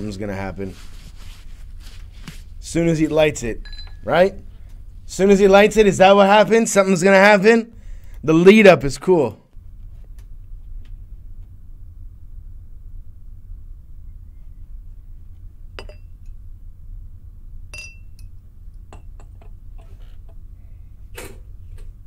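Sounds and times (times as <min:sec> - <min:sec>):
glassware clinking: 0:03.6 - 0:04.0, 0:15.8 - 0:16.2, 0:17.7 - 0:18.3, 0:18.9 - 0:19.5
low hum: 0:07.7 - 0:22.0.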